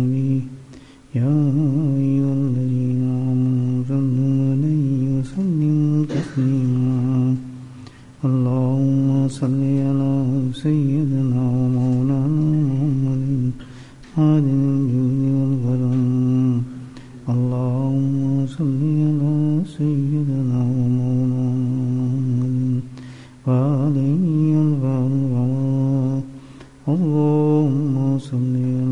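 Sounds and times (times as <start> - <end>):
man chanting: 0.0 - 28.9.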